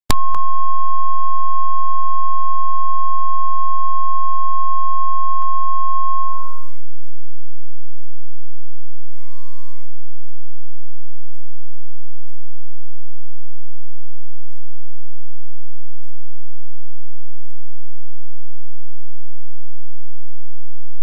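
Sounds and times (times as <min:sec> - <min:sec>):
click: 0:00.0 - 0:00.5, 0:05.3 - 0:05.6
short beep: 0:00.1 - 0:06.8, 0:09.0 - 0:09.9
steady test tone: 0:00.1 - 0:10.0.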